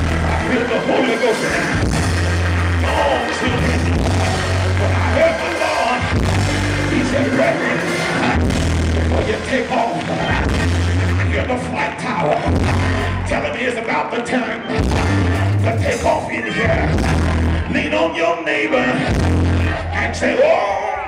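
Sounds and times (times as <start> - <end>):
low held bass notes: 0.0 - 11.8, 12.4 - 13.6, 14.8 - 17.9, 19.0 - 20.2
live church band music: 0.0 - 21.0
person singing: 0.0 - 21.0.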